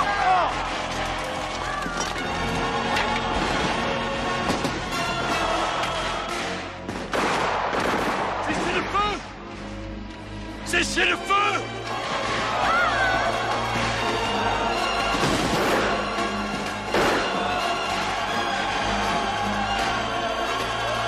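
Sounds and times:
crowd shouting: 0.0 - 6.6, 11.6 - 21.0
dramatic film music: 0.0 - 21.0
musket fire: 6.9 - 8.8, 16.9 - 17.4.

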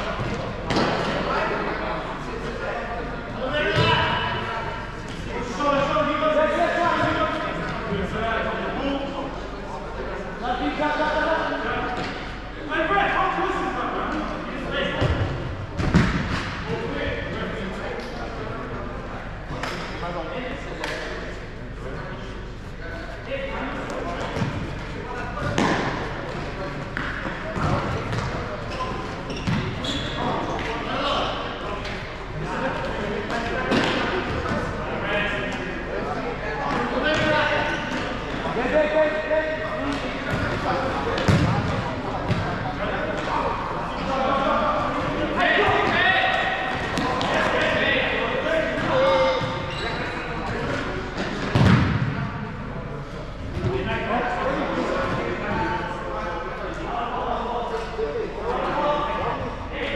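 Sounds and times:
players shouting in echoing hall: 0.0 - 18.7, 23.5 - 52.6.

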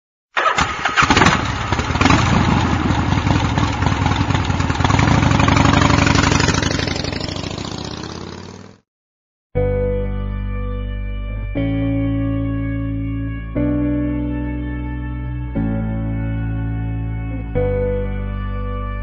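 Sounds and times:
motorcycle engine running: 0.9 - 8.8
music: 9.6 - 19.0.

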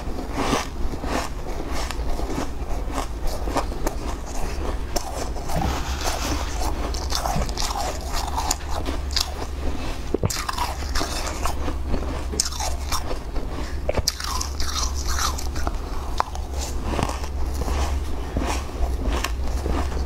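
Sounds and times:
ice crunching when chewed: 0.0 - 20.0
steady low hum: 0.0 - 20.0.

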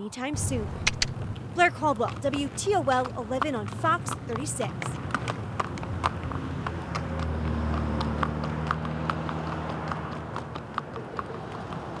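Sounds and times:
hooves clip-clopping on concrete: 0.5 - 12.0.

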